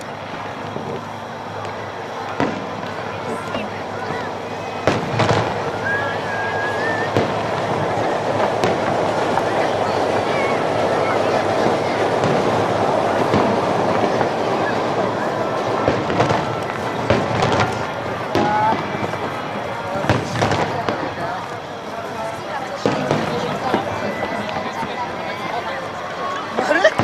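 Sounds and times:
firework bangs: 0:00.0 - 0:27.0
many people talking: 0:00.0 - 0:27.0.

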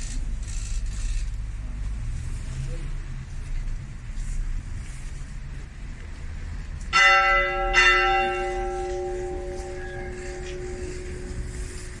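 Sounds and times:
church bell tolling: 0:06.9 - 0:12.0.

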